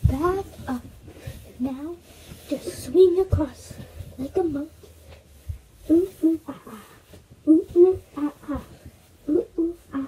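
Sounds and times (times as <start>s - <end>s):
girl making vocal sounds: 5.8s - 10.0s.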